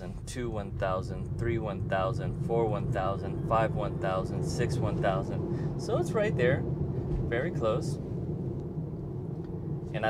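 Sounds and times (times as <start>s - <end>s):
road and tyre rumble in car: 0.0s - 10.0s.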